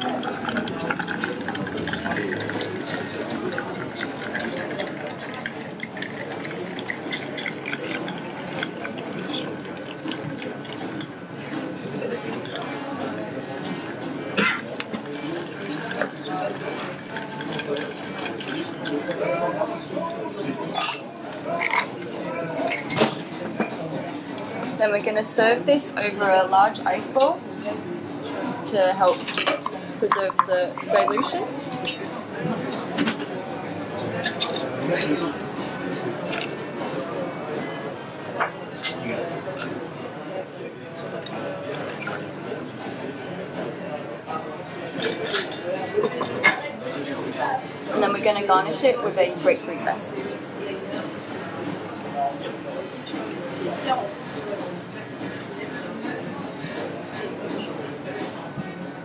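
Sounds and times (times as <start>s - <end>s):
ice clinking in a glass: 0.0s - 11.0s, 29.2s - 32.0s
glass with ice clinking: 29.3s - 32.0s.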